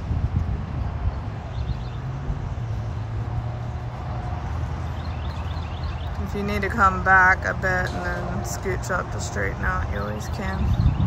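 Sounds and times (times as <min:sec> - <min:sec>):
truck engine running at low revs: 0:00.0 - 0:11.0.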